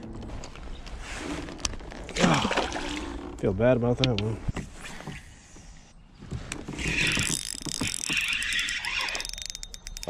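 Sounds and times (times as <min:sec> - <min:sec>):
fishing reel clicking: 0:07.0 - 0:10.0.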